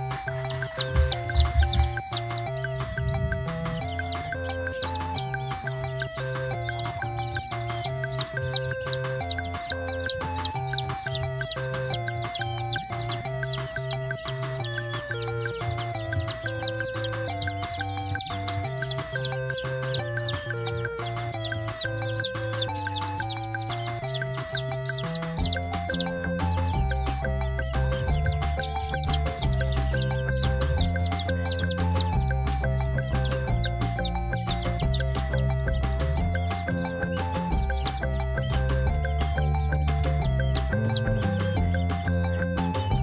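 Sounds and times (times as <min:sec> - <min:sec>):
background music with steady beat: 0:00.0 - 0:43.0
chick peeping: 0:00.0 - 0:43.0.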